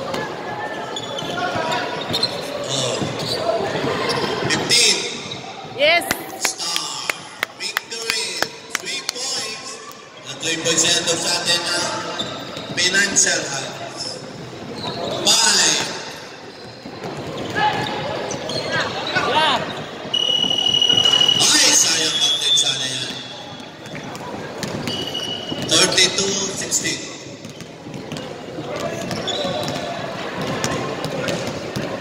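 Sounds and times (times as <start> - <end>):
sneakers squeaking: 0.0 - 5.8, 7.8 - 32.0
referee's whistle blasts: 20.0 - 24.1, 24.8 - 26.1
basketball bouncing: 23.1 - 25.8, 27.4 - 32.0.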